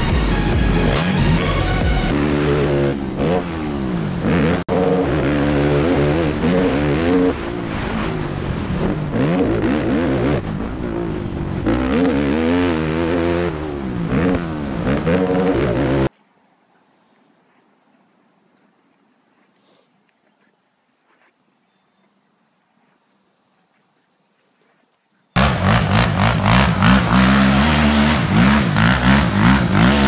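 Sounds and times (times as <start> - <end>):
quad bike engine revving: 0.0 - 16.1, 25.4 - 30.0.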